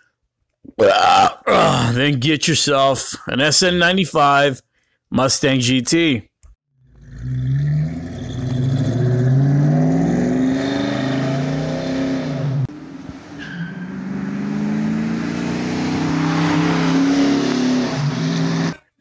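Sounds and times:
car engine accelerating: 6.8s - 18.9s.

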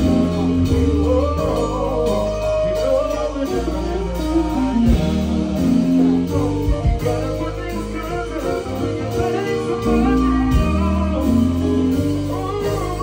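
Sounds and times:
heavy bass line: 0.0s - 13.0s
live band music over speakers: 0.0s - 13.0s.

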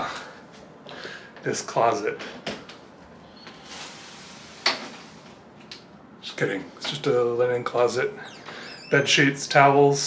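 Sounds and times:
low room hiss: 0.0s - 10.0s.

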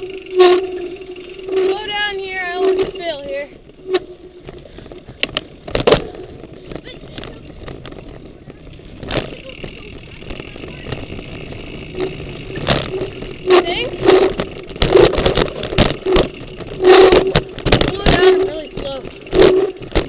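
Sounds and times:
mountain bike rattling: 0.0s - 20.0s
bike clattering over rocks: 4.4s - 20.0s.

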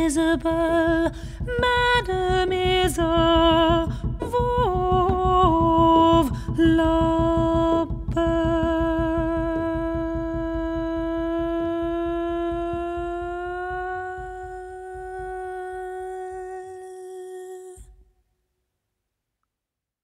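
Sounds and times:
low pulsing rumble: 0.0s - 16.8s
woman humming with vibrato: 1.9s - 17.9s.

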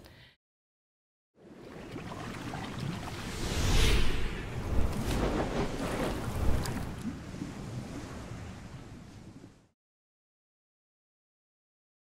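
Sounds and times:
rushing wash of noise: 3.1s - 7.0s.

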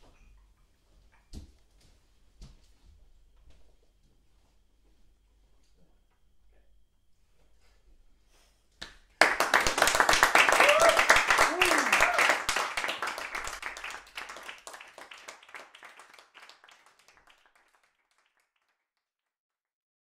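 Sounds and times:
audience applause: 9.2s - 18.8s.

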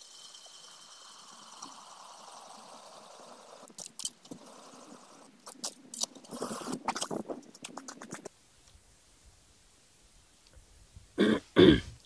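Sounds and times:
man clearing his throat: 11.2s - 12.0s.

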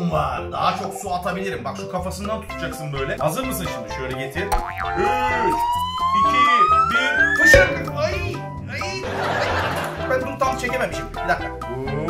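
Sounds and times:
cheerful background music: 0.0s - 12.0s
whistle tone sliding upward: 4.8s - 8.3s.

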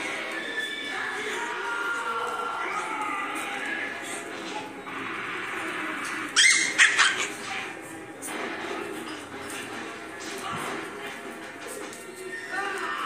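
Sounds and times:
puppies yipping: 6.3s - 7.7s.

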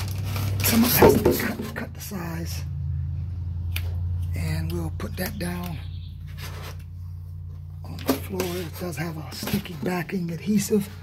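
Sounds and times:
rustling and scraping: 0.0s - 1.9s, 6.2s - 11.0s
low background hum: 0.0s - 11.0s.

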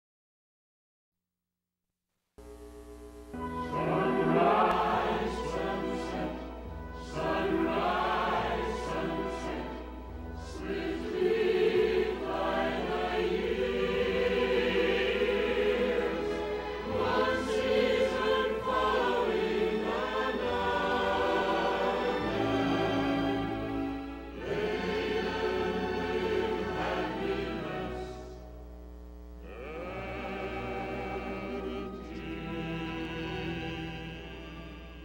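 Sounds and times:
choir singing: 3.4s - 28.5s, 29.4s - 35.0s.

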